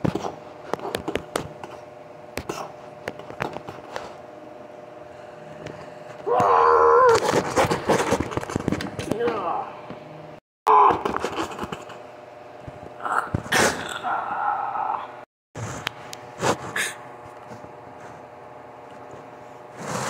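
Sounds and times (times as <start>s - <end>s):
person making wordless vocal sounds: 13.0s - 15.2s.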